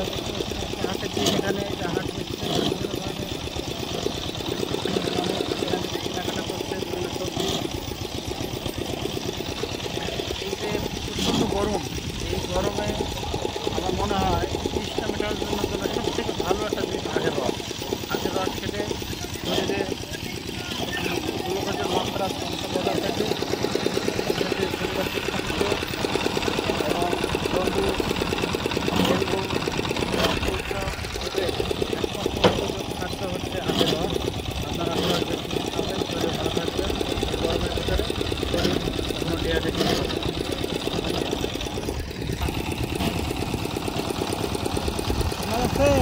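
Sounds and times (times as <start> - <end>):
small engine knocking: 0.0 - 46.0
voices talking: 0.0 - 46.0.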